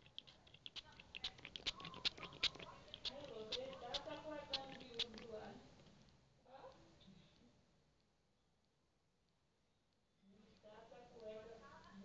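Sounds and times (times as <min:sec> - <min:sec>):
wet mouth clicks and smacks: 0:00.0 - 0:05.4.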